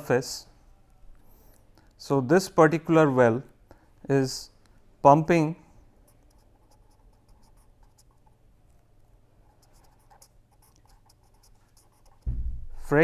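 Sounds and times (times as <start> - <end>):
faint steady hum: 0.0 - 13.0
pen writing on paper: 6.1 - 8.4, 9.5 - 12.3
low thump: 12.2 - 12.9.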